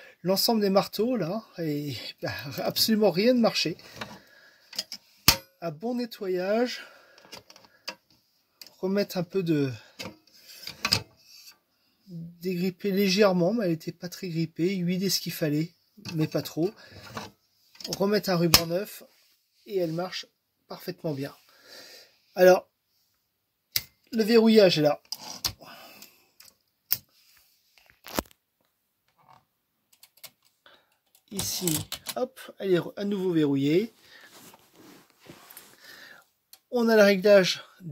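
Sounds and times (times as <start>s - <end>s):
metal parts scraping: 25.0s - 25.6s.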